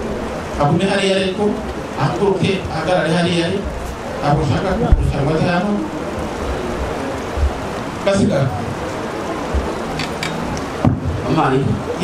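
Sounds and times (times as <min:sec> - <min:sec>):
room noise hiss: 0:00.0 - 0:12.0
soft low thumps: 0:09.5 - 0:09.8.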